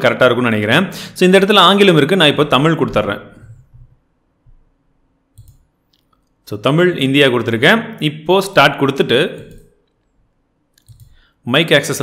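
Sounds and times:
man speaking: 0.0s - 3.5s, 6.5s - 9.6s, 11.4s - 12.0s
computer mouse click: 5.3s - 6.3s, 10.7s - 11.2s.

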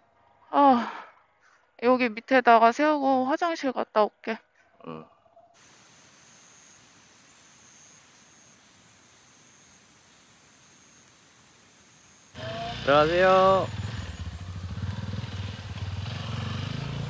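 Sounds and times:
thin high whine: 5.6s - 15.6s
outdoor background hiss: 5.6s - 17.0s
motorcycle engine idling: 11.2s - 17.0s.

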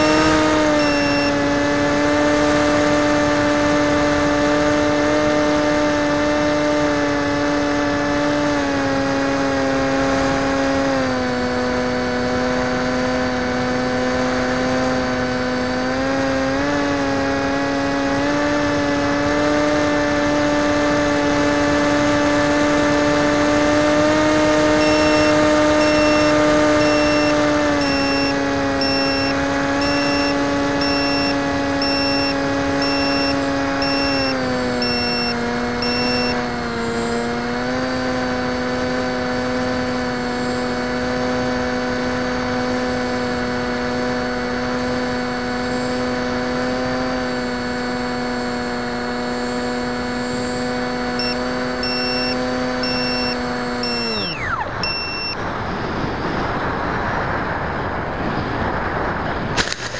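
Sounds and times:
electric motor and propeller hum: 0.0s - 59.9s.

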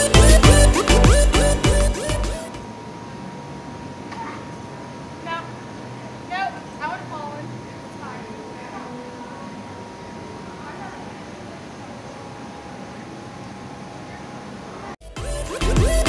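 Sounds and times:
music: 0.0s - 2.6s, 15.0s - 16.0s.

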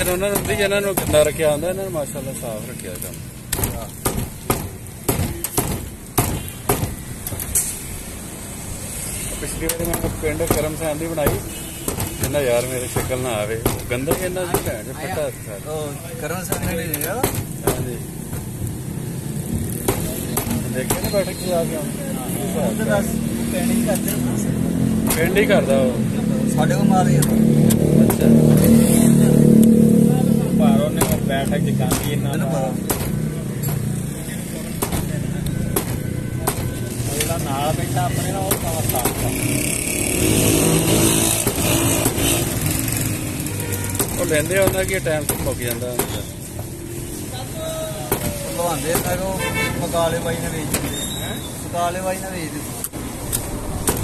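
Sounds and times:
cleaver striking chopping block: 3.5s - 7.0s, 31.0s - 31.3s, 31.9s - 33.9s, 34.8s - 36.7s
cleaver chopping on wooden block: 19.8s - 21.1s, 31.0s - 31.3s, 31.9s - 32.2s, 32.8s - 33.9s, 34.8s - 36.8s
vehicle engine passing by: 22.0s - 34.7s, 37.4s - 43.5s.

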